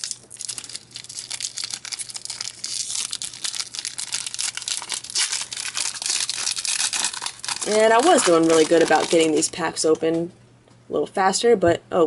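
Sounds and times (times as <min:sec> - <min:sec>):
wrapper tearing and crinkling: 0:00.0 - 0:09.5.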